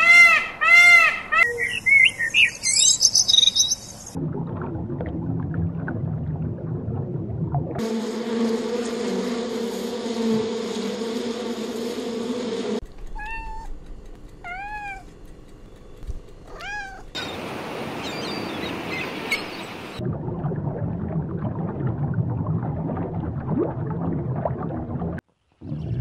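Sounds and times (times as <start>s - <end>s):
bumblebee buzzing: 7.8s - 20.0s
faint chirps: 12.9s - 20.0s
cat meowing: 13.1s - 13.8s, 14.4s - 15.1s, 16.4s - 17.2s
low rumble: 20.0s - 25.2s.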